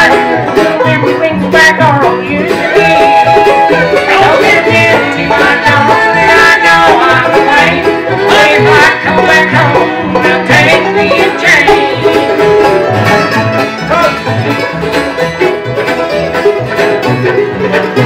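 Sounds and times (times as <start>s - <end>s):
acoustic guitar: 0.0s - 18.0s
banjo: 0.0s - 18.0s
fiddle: 0.0s - 18.0s
mandolin: 0.0s - 18.0s
upright bass: 0.0s - 18.0s.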